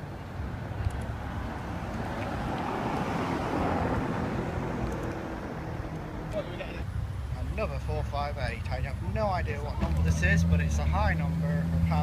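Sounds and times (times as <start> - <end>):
car driving past: 1.4 - 6.8.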